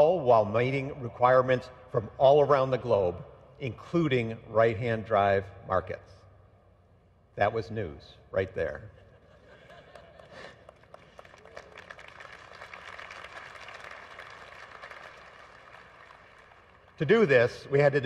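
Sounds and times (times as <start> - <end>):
faint audience applause: 9.9 - 17.0.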